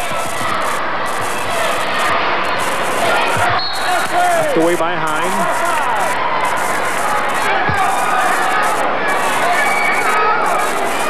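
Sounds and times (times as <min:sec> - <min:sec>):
gymnasium crowd noise: 0:00.0 - 0:11.0.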